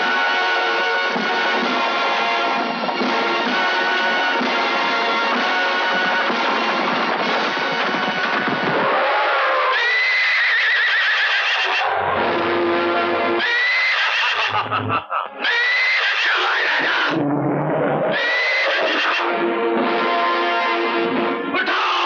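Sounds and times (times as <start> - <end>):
background music: 0.0 - 15.9, 18.1 - 22.0
horse whinnying: 8.7 - 12.2, 13.4 - 17.2, 18.0 - 19.3.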